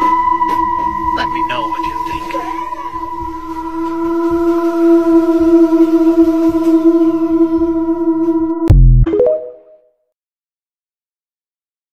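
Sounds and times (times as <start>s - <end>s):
eerie electronic drone: 0.0s - 9.1s.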